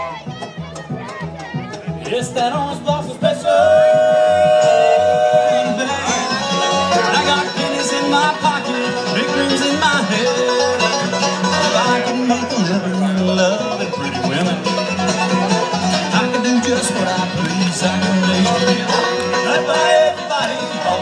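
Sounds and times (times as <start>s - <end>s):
banjo: 0.0s - 21.0s
fiddle: 0.0s - 21.0s
guitars: 0.0s - 21.0s.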